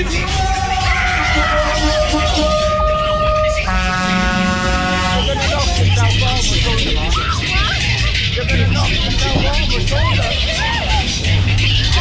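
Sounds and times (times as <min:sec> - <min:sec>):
dance music with heavy bass: 0:00.0 - 0:12.0
horn blast: 0:01.0 - 0:05.9.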